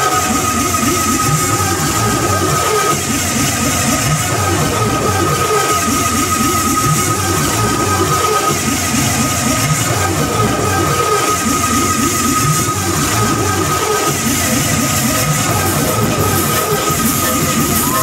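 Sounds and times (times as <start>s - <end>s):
live electronic music: 0.0s - 18.0s
steady high tone: 15.0s - 18.0s.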